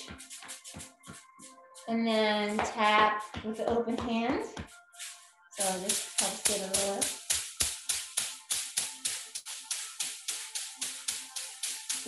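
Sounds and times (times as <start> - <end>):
massage stick tapping body: 5.6 - 12.0.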